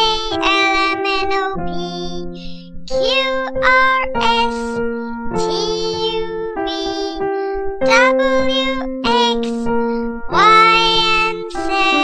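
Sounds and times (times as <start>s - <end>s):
childlike voice singing: 0.0s - 9.7s, 10.3s - 12.0s.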